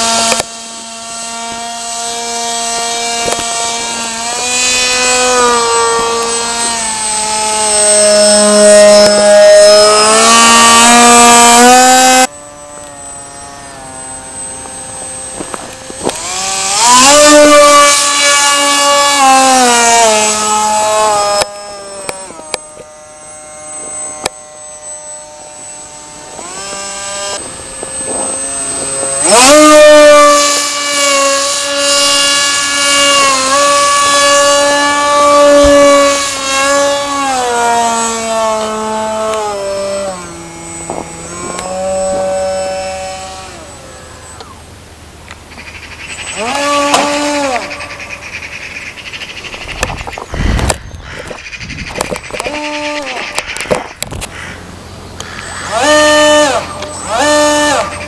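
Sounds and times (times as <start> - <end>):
model plane electric motor whine: 0.0 - 58.0.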